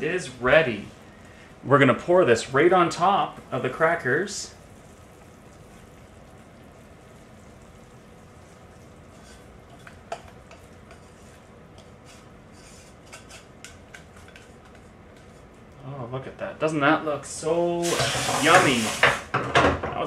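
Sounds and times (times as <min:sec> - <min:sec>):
low background hiss: 0:00.0 - 0:20.0
spatula scraping metal saucepan: 0:09.1 - 0:15.5.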